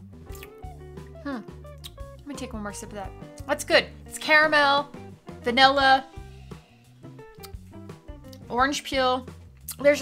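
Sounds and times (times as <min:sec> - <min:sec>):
quiet instrumental background music: 0:00.0 - 0:10.0.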